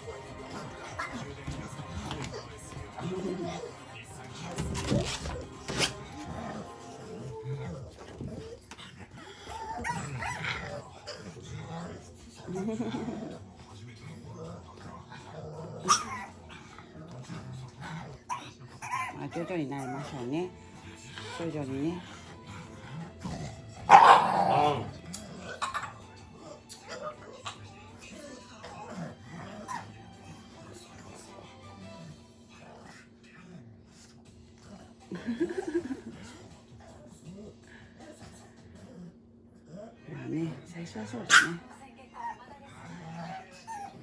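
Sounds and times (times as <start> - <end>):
faint dog vocal sounds: 0.0 - 44.0
dog whimpering: 18.3 - 20.4, 43.0 - 44.0
dog barking: 23.9 - 24.6, 41.3 - 41.6.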